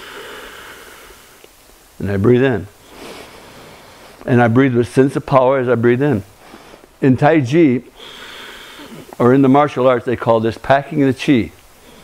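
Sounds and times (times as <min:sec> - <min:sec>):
man exhaling forcefully: 0:00.0 - 0:01.4, 0:08.0 - 0:09.2.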